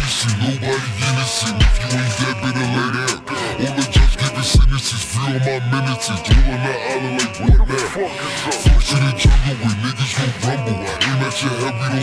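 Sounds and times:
rapping over a beat: 0:00.0 - 0:12.0.

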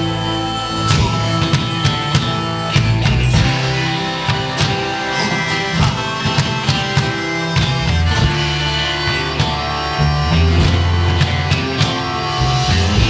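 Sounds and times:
drum kit beat: 0:00.0 - 0:13.0
strummed acoustic guitar: 0:00.0 - 0:13.0
sustained bass line: 0:00.0 - 0:13.0.

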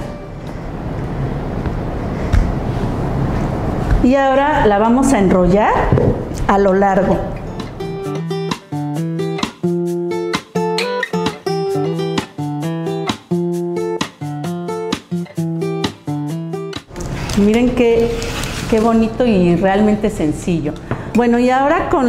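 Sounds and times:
acoustic guitar strumming: 0:00.0 - 0:02.3, 0:07.0 - 0:17.4.

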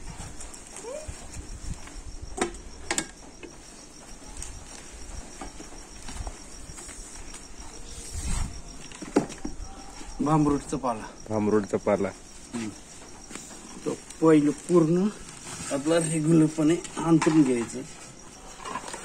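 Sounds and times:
crickets chirping: 0:00.0 - 0:19.0.

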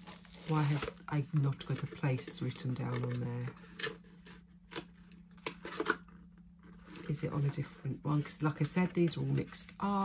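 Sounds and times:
packaging rustling and crinkling: 0:00.0 - 0:07.5.

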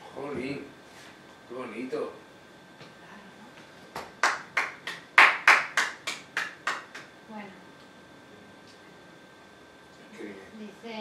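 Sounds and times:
man hand clapping rhythmically: 0:03.9 - 0:07.1.

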